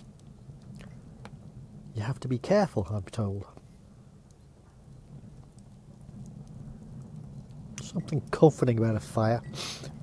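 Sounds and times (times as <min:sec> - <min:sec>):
fire crackling: 0:00.0 - 0:10.0
fire low rumble: 0:00.0 - 0:10.0.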